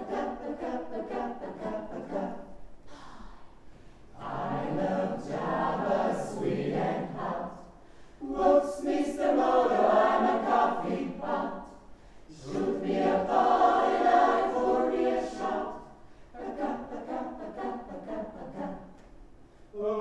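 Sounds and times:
mixed choir singing a cappella: 0.0s - 3.5s, 4.1s - 19.1s.

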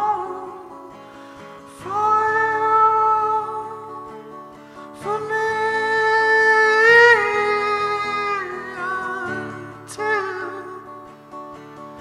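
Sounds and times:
man singing: 0.0s - 1.0s, 1.6s - 11.4s
strummed acoustic guitar: 0.0s - 12.0s.

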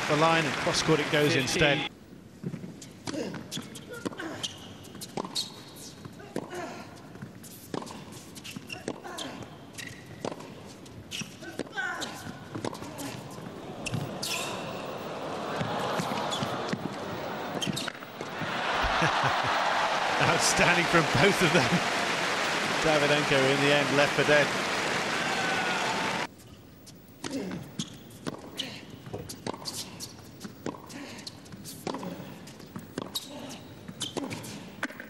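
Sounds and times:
crowd applause: 0.0s - 1.9s, 13.7s - 26.3s
shoes squeaking on court: 2.8s - 6.2s, 7.2s - 18.9s, 27.6s - 35.0s
tennis ball bouncing: 15.5s - 19.0s.

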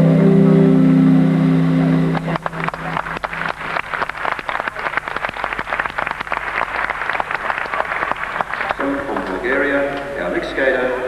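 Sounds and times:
music ending on held chord: 0.0s - 3.5s
audience applauding: 2.0s - 10.0s.

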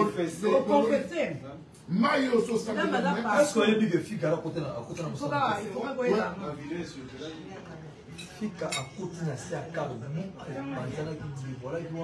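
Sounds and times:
cutlery and dishes clinking: 8.1s - 9.1s.

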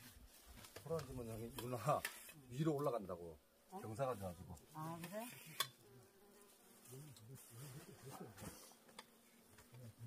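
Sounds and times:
flying insect buzzing: 3.6s - 10.0s.

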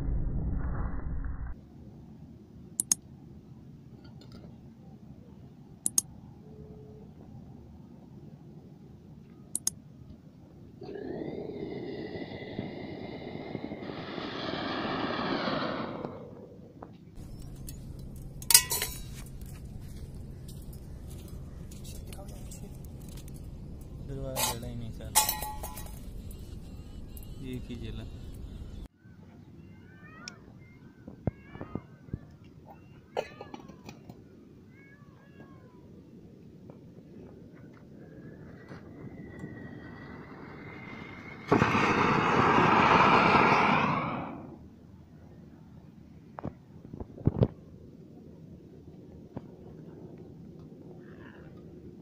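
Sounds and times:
sharp clicks: 2.8s - 3.0s, 5.8s - 6.1s, 9.5s - 9.8s
sharp crackles: 10.9s - 28.9s, 37.5s - 44.5s
firework hissing rush: 11.0s - 16.5s, 38.9s - 44.6s
muffled firework rumbling: 11.0s - 28.8s, 36.7s - 44.6s.

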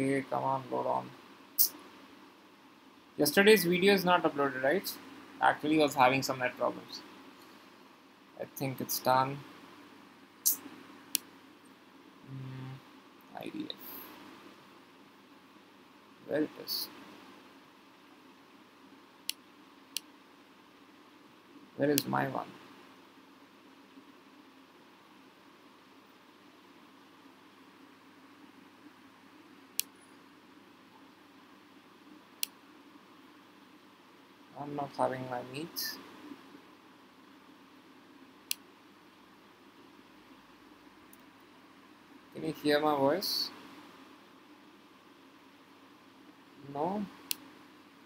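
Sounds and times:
faint room hiss: 0.0s - 48.0s.

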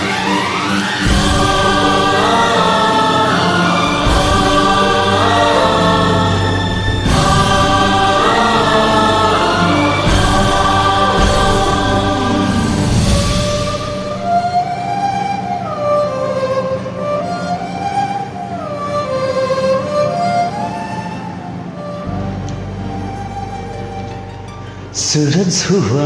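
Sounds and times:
wordless choir voices: 0.0s - 15.1s
orchestral backing track: 0.0s - 26.0s.

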